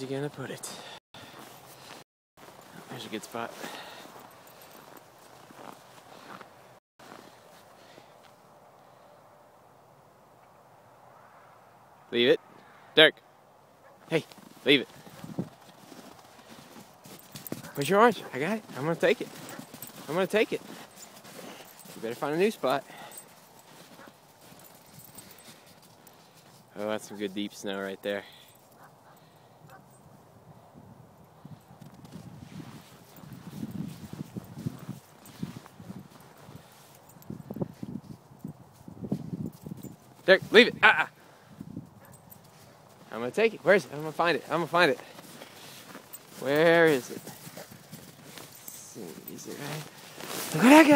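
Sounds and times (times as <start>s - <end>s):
footsteps crunching in snow: 1.2s - 8.4s, 14.2s - 27.3s, 31.8s - 40.6s, 42.0s - 50.9s.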